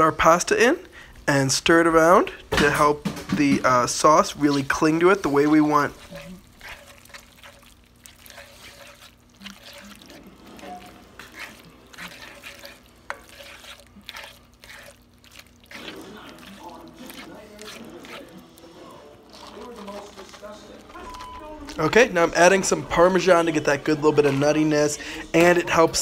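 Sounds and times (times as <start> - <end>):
sauce sloshing and bubbling: 0.9 - 26.0.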